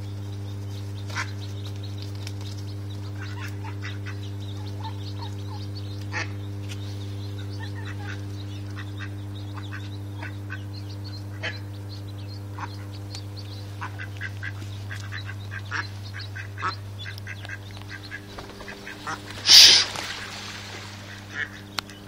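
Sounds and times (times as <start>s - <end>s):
ducks and ducklings calling: 0.0s - 22.0s
steady low hum: 0.0s - 22.0s.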